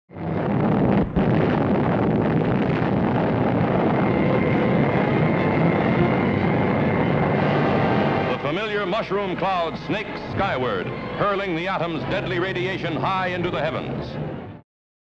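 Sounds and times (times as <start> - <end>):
rumbling roar of bomb blast: 0.1 - 9.4.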